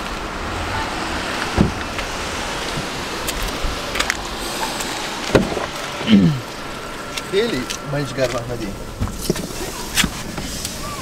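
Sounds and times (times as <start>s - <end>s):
wind buffeting microphone: 0.0s - 11.0s
dull thump: 1.5s - 1.9s, 5.3s - 6.2s.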